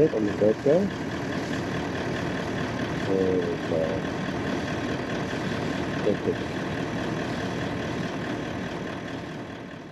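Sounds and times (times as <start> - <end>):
car engine idling: 0.0 - 9.9.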